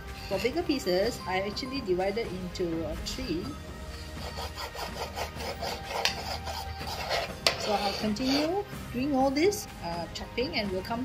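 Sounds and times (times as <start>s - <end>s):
cleaver cutting on cutting board: 4.2s - 8.6s.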